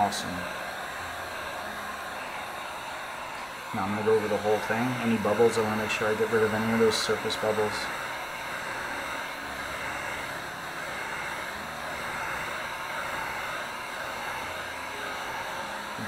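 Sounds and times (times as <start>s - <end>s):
heat tool rushing: 0.0s - 16.0s.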